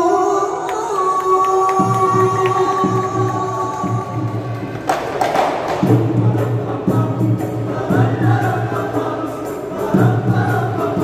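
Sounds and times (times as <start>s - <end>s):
boys singing together: 0.0s - 4.8s, 5.7s - 11.0s
deep drum: 1.8s - 9.0s
frame drums beating: 1.8s - 11.0s.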